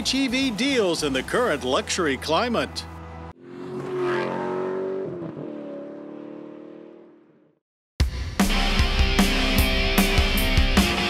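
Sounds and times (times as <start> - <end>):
car engine accelerating: 2.5 - 7.4.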